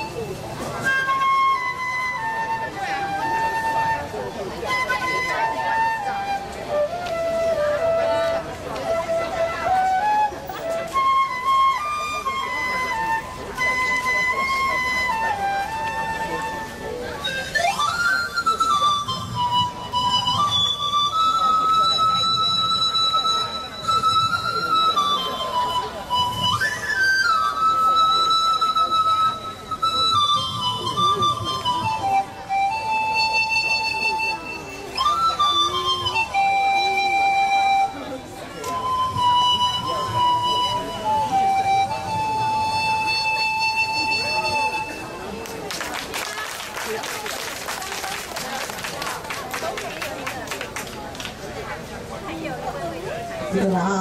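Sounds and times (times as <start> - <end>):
concert flute melody: 0.0 - 47.0
pan flute melody: 0.0 - 54.0.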